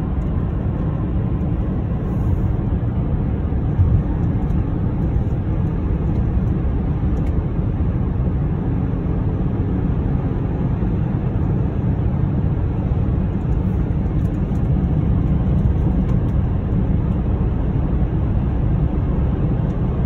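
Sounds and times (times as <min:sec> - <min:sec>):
car cabin road rumble: 0:00.0 - 0:20.0.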